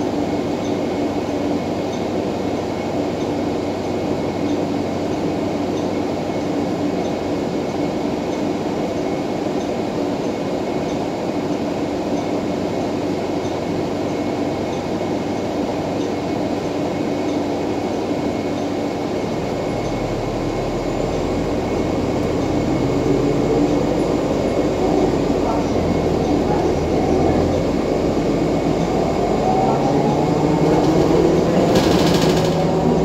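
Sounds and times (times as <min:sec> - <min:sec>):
bus engine hum: 0:00.0 - 0:33.0.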